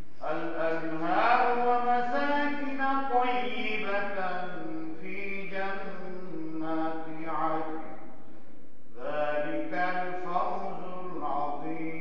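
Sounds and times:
man chanting prayer recitation: 0.0s - 8.2s, 8.9s - 12.0s.

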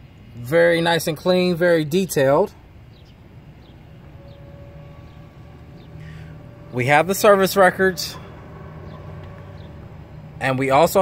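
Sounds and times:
car engine idling: 2.2s - 11.0s
faint steady whine: 2.5s - 11.0s.

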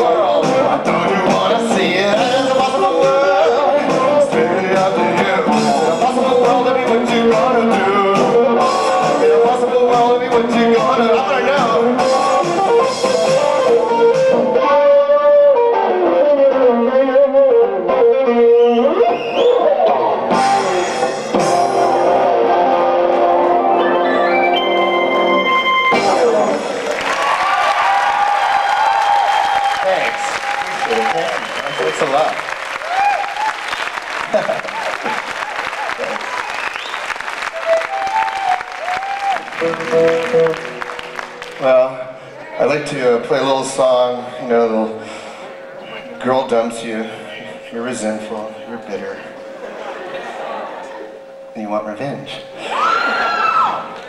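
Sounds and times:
keyboard: 0.0s - 27.0s, 37.4s - 54.0s
audience applause: 26.1s - 42.0s.

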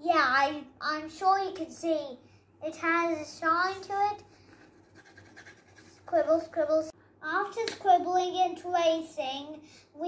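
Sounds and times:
pencil scribbling on paper: 4.2s - 6.1s.

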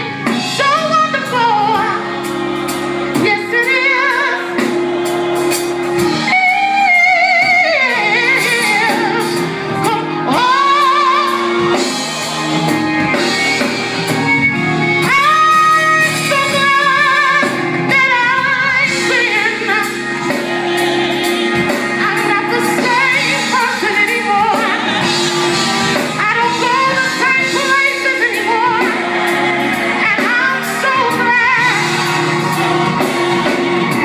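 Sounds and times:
woman singing gospel: 0.0s - 4.8s, 5.9s - 11.9s, 15.0s - 34.0s
band accompaniment: 0.0s - 34.0s.

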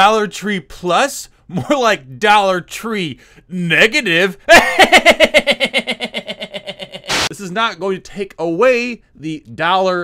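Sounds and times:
man laughing hard: 4.5s - 7.3s.

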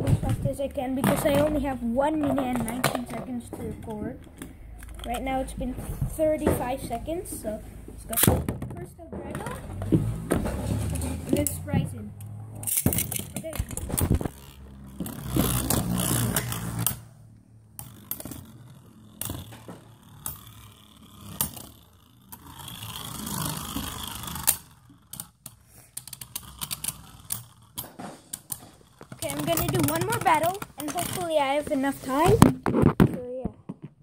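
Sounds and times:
spinning tops whirring: 10.6s - 32.4s.

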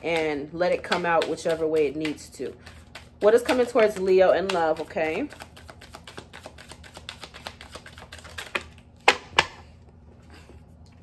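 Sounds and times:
cards shuffling: 0.0s - 9.5s.

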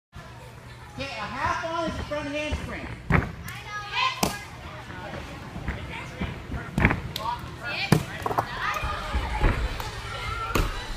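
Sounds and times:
voices in large gym: 0.2s - 10.9s.

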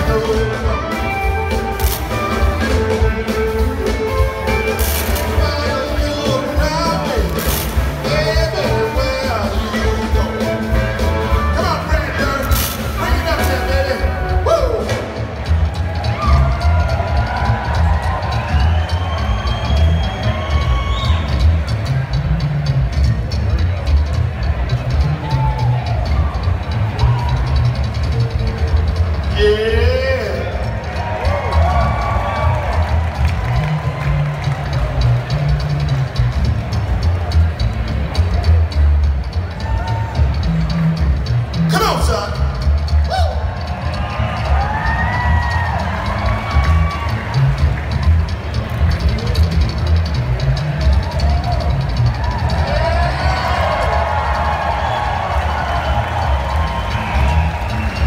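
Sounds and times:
bass line: 0.0s - 58.0s
blues band playing rock and roll: 0.0s - 58.0s.

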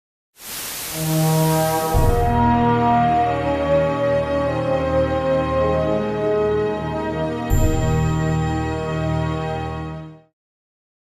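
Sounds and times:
low horn-like chord: 0.9s - 9.3s
deep hit: 2.0s - 2.8s.

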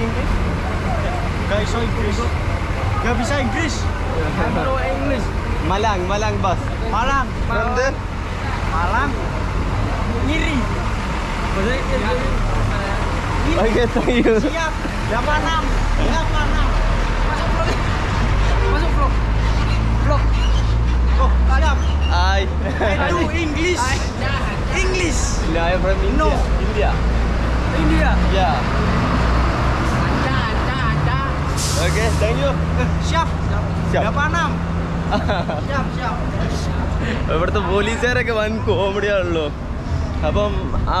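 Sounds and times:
people talking: 0.0s - 19.3s, 21.1s - 27.0s, 27.7s - 29.1s, 29.9s - 39.6s, 40.2s - 41.0s
engine rumbling: 0.0s - 41.0s.

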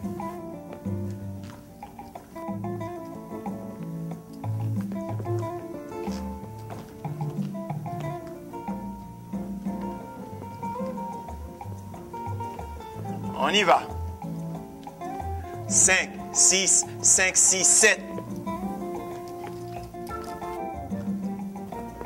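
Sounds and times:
plucked guitar lines: 0.0s - 22.0s
repeating bass pattern: 15.2s - 18.7s.

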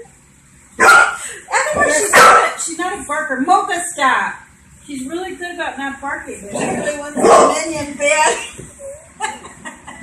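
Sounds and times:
dog barking: 0.8s - 1.2s, 2.1s - 2.6s, 7.2s - 7.6s.

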